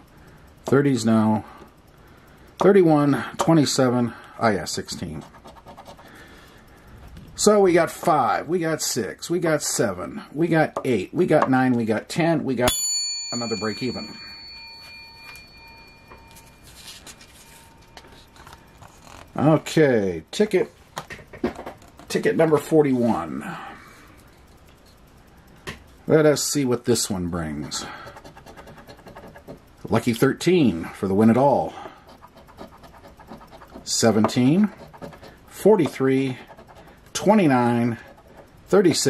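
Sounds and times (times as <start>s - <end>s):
coin scratching lottery ticket: 4.8s - 6.1s, 16.4s - 19.4s, 27.5s - 30.1s, 31.3s - 39.0s
coin ringing: 12.7s - 18.3s.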